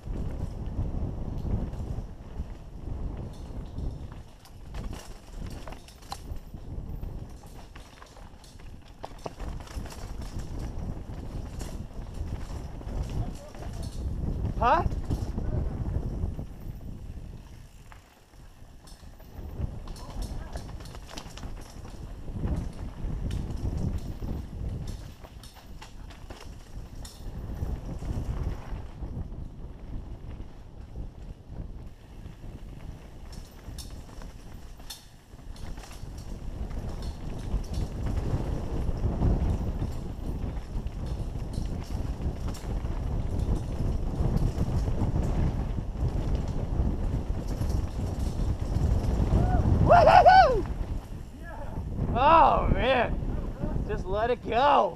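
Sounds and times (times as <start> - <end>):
bike clattering and rattling: 0.0 - 54.9
wind and tyres rumbling on dirt: 0.0 - 54.9.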